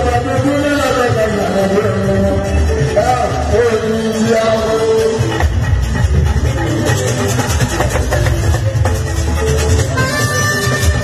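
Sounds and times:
heavy bass guitar line: 0:00.0 - 0:11.0.

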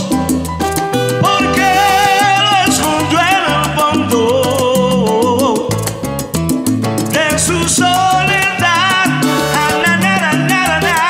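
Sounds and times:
bass and percussion rhythm: 0:00.0 - 0:11.0
wavering melody line: 0:00.8 - 0:05.2.

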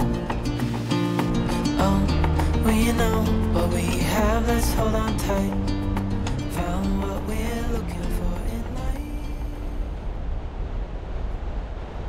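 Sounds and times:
hiss of surf: 0:00.0 - 0:12.0
wind buffeting microphone: 0:05.0 - 0:12.0.

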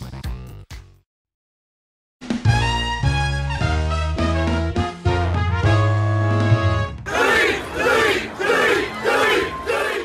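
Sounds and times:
crowd chanting in unison: 0:07.1 - 0:10.0.

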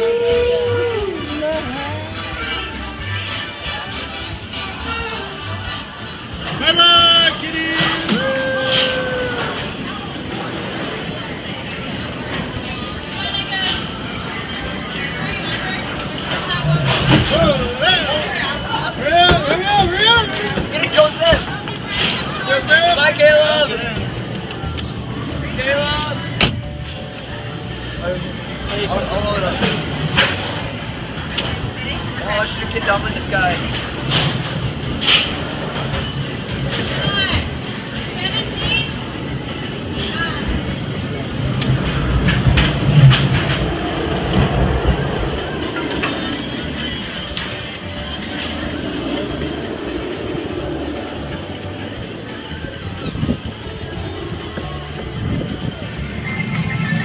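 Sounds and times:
indistinct voices: 0:00.0 - 0:57.0.

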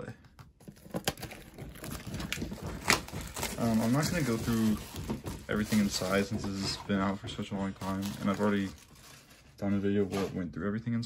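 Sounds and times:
plastic shrink wrap crinkling: 0:00.6 - 0:10.4.

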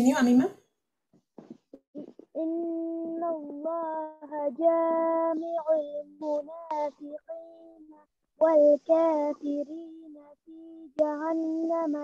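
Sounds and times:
child reciting in melodic chant: 0:02.0 - 0:12.0.

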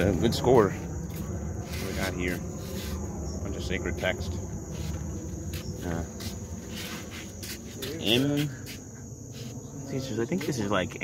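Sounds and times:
night insects chorus: 0:00.0 - 0:11.0.

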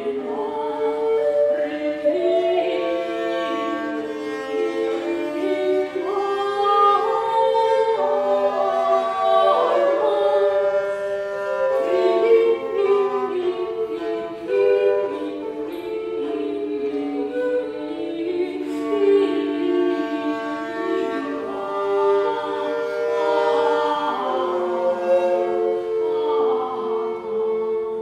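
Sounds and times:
ensemble singing medieval music: 0:00.0 - 0:28.0.

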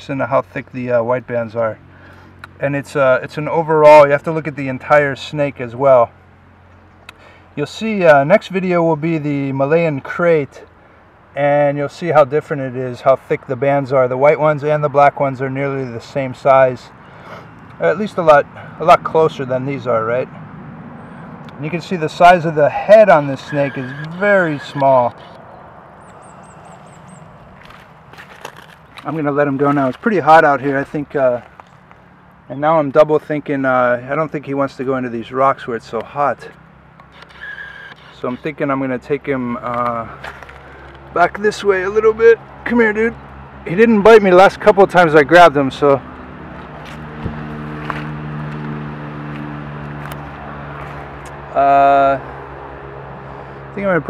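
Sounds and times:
steady outdoor hiss: 0:00.0 - 0:54.0
vehicle engine humming: 0:00.0 - 0:54.0
high chirps: 0:23.1 - 0:27.4
crunches on gravel: 0:26.0 - 0:32.1, 0:39.5 - 0:41.1, 0:46.5 - 0:51.3.

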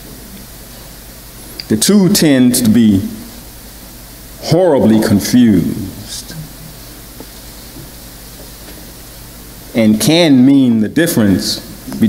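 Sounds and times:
faint low hum: 0:00.0 - 0:12.0
steady microphone hiss: 0:00.0 - 0:12.0.

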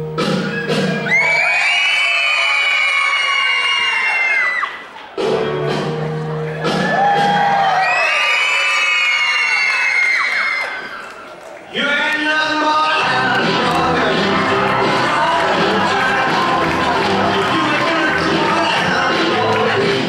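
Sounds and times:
loud music with held chords: 0:00.0 - 0:01.3, 0:05.2 - 0:07.6, 0:13.0 - 0:20.0
audience cheering: 0:00.3 - 0:05.2, 0:06.3 - 0:20.0
children whooping: 0:00.4 - 0:04.9, 0:06.7 - 0:11.5.

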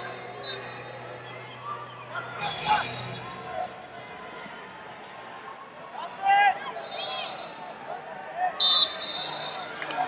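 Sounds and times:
referee's whistle blown: 0:00.4 - 0:00.8, 0:08.6 - 0:09.8.

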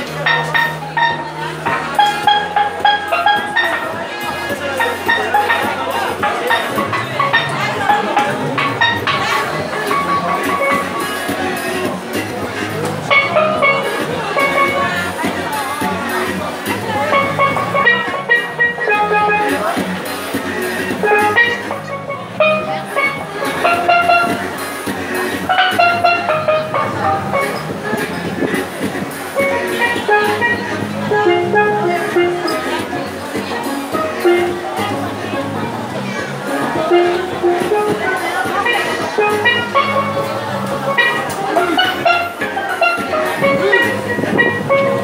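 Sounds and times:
steelpan melody: 0:00.0 - 0:45.0.

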